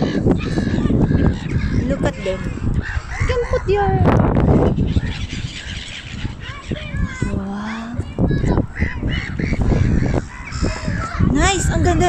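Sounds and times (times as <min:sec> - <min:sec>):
waterbirds calling: 0:00.0 - 0:12.0.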